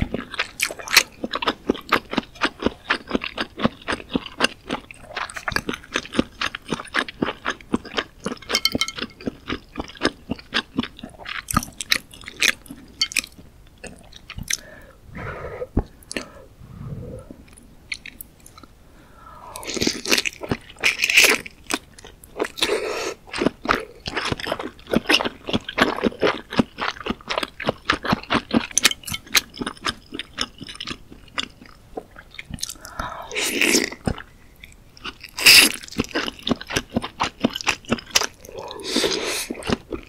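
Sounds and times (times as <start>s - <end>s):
wet chewing sounds: 0.0s - 14.7s, 19.6s - 40.0s.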